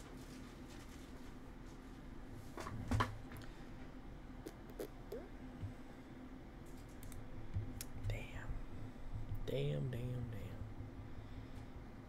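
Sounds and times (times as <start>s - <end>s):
man whispering: 8.1s - 8.6s.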